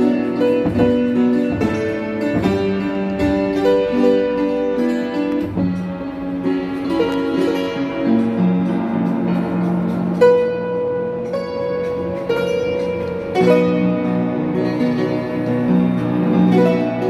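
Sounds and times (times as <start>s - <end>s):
upright piano playing a hymn: 0.0s - 17.0s.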